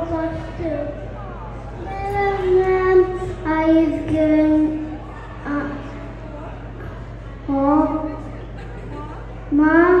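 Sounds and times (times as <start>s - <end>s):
child singing into a microphone: 1.8s - 4.9s, 9.5s - 10.0s.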